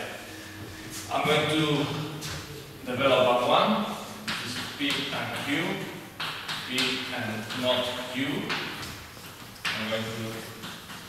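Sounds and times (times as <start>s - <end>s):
man speaking: 0.0s - 6.0s, 6.7s - 8.6s, 9.8s - 10.6s
chalk tapping on blackboard: 4.2s - 11.0s.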